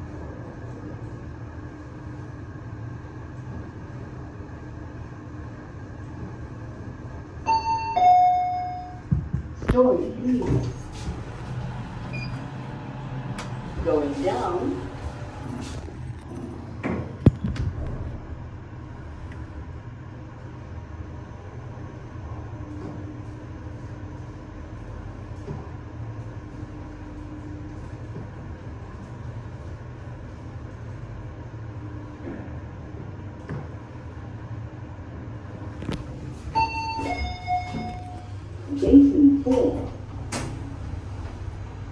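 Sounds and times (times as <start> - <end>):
lift car running hum: 0.0 - 41.9
lift doors shutting click: 13.2 - 13.7, 35.8 - 38.3, 39.5 - 41.5
two-note arrival chime: 36.6 - 38.3.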